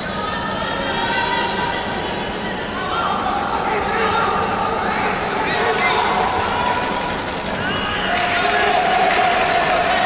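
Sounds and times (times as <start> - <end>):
crowd shouting and chatter: 0.0 - 10.0.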